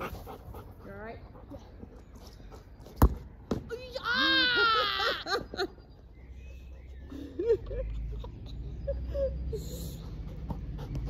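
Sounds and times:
girl crying out high-pitched: 3.8 - 5.4.

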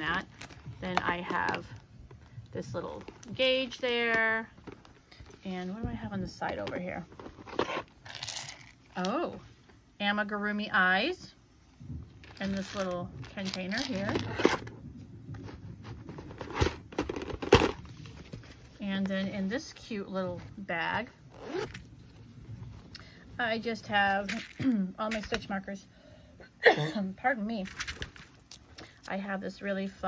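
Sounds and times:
metal zipper pulled open: 7.4 - 8.8, 21.3 - 22.0
rustling rattle in plastic basket: 12.2 - 14.7, 24.0 - 25.3, 27.6 - 28.6.

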